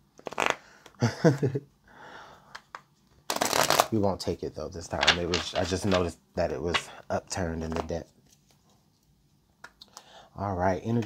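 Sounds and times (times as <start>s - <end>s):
cards rustling: 4.9s - 6.1s.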